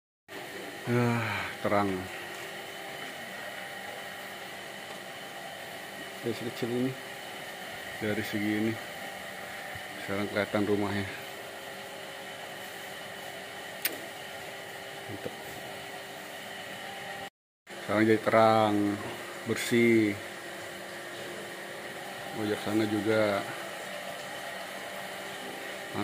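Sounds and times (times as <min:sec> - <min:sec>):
sharp click: 0:13.8 - 0:14.0.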